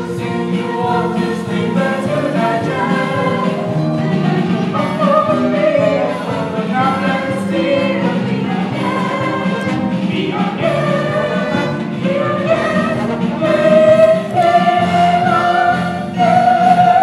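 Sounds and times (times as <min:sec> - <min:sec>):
musical accompaniment: 0:00.0 - 0:17.0.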